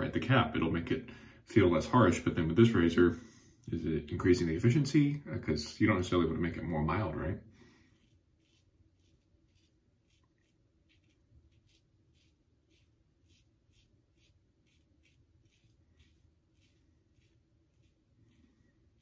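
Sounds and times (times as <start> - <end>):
razor scratching through stubble: 7.7 - 19.0.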